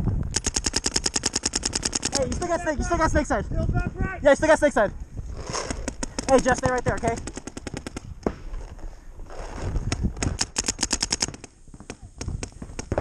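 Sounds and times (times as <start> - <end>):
paintball markers firing: 0.3 - 2.5, 5.5 - 8.5, 9.4 - 13.0.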